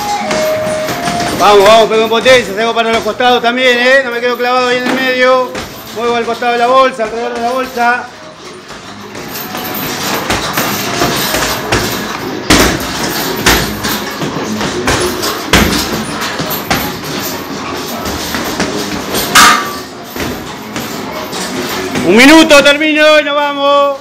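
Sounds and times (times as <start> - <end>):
gloves thudding on punching bags: 0.0 - 22.3.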